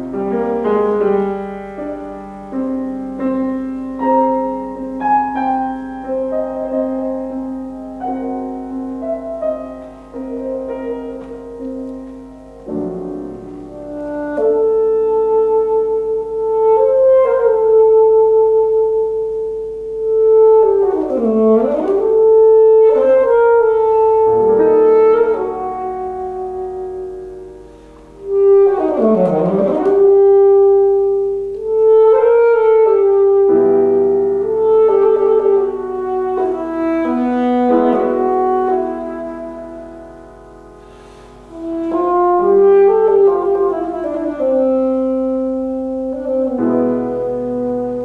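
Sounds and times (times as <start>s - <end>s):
alto saxophone: 0.0s - 48.0s
piano accompaniment: 0.0s - 48.0s.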